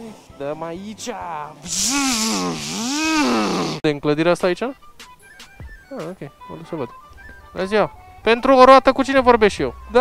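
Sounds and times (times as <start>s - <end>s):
man vocalizing sing-song: 1.6s - 3.8s.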